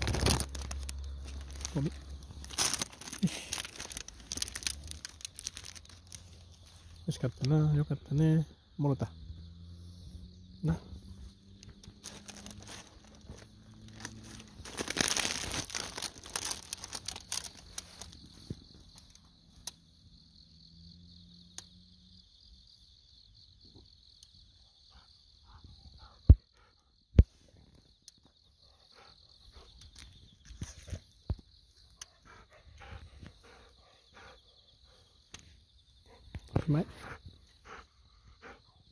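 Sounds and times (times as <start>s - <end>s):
rustling and crinkling: 0.0s - 7.5s, 11.2s - 19.7s, 29.5s - 31.9s
insects chirping: 0.0s - 38.9s.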